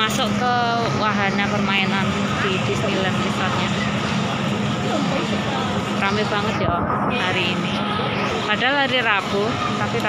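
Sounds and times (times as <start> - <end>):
crowd walking and talking: 0.0 - 10.0
low machine hum: 0.0 - 10.0.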